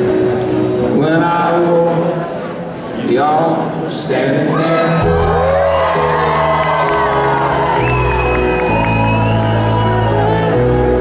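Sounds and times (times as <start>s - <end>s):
folk-rock band playing: 5.0s - 11.0s.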